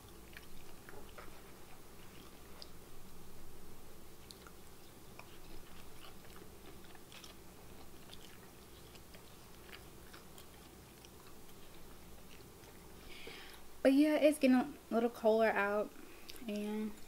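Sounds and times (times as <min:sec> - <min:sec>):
chewing fried food: 0:00.0 - 0:02.9, 0:04.1 - 0:13.7, 0:16.0 - 0:17.0
low room hum: 0:00.0 - 0:17.0.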